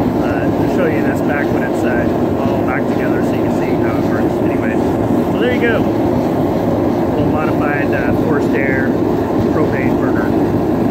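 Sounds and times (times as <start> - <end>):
gas forge flames rushing: 0.0 - 10.9.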